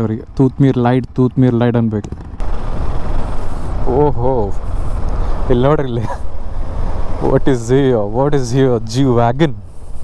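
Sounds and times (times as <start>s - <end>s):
motorcycle engine at low revs: 0.0s - 10.0s
road rumble: 0.0s - 10.0s
wind: 0.0s - 10.0s.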